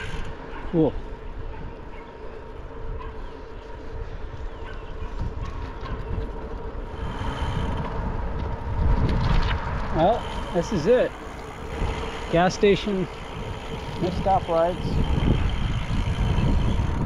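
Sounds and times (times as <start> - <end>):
road and tyre noise: 0.0 - 17.0
wind buffeting microphone: 0.0 - 17.0.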